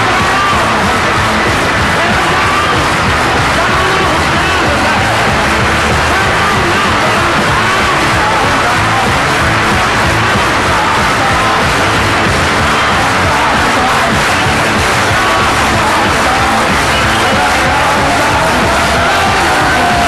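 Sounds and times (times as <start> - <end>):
crowd noise: 0.0 - 20.0
rockabilly band playing live: 0.0 - 20.0.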